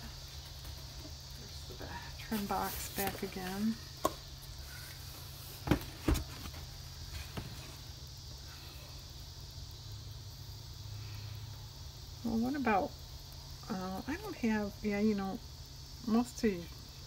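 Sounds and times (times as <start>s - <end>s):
insects droning: 0.0s - 17.0s.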